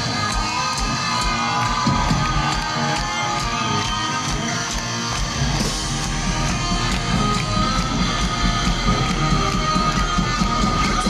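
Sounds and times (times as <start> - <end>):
crowd cheering: 0.0 - 11.0
rock band playing live: 0.0 - 11.0.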